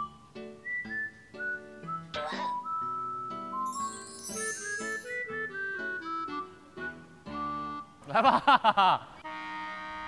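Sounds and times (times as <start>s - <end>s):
whistled melody: 0.0s - 8.0s.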